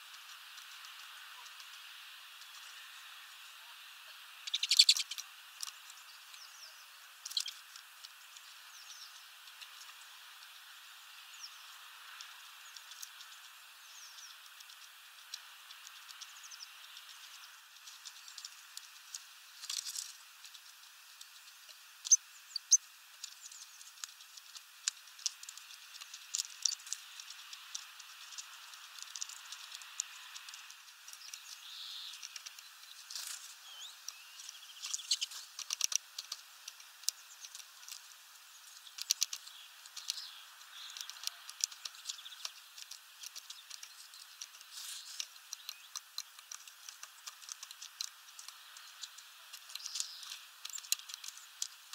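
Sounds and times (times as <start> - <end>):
faint steady hiss: 0.0 - 51.9
high bird chirps: 4.4 - 5.2, 6.3 - 7.6, 22.1 - 22.8, 33.6 - 35.3
beaks clicking on seed husks: 4.4 - 6.4, 7.1 - 8.6, 9.2 - 51.9.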